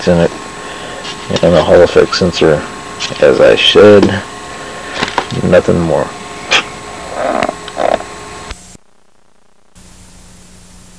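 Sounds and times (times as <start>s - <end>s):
video tape static hiss: 0.0s - 10.9s.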